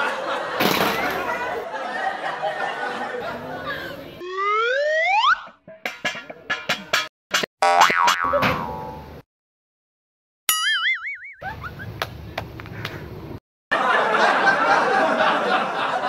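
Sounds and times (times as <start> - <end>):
wobbling boing: 7.4 - 9.2, 10.5 - 11.4
outdoor background noise: 11.4 - 16.0.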